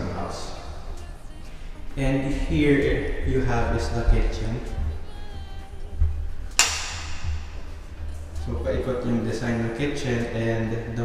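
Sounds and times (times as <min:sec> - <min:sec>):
background music with bass line: 0:00.0 - 0:11.0
sharp bright ringing hit: 0:06.6 - 0:07.6.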